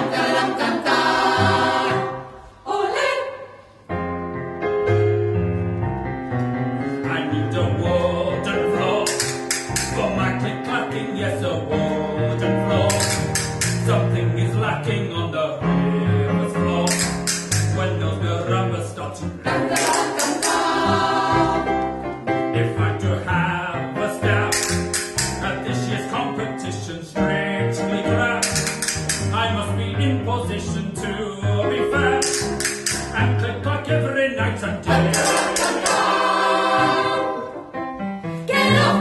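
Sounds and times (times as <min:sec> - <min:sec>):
mixed choir singing: 0:00.0 - 0:03.8, 0:19.4 - 0:22.0, 0:34.8 - 0:37.7, 0:38.5 - 0:39.0
instrumental accompaniment: 0:03.7 - 0:26.6, 0:27.2 - 0:34.0, 0:34.7 - 0:39.0.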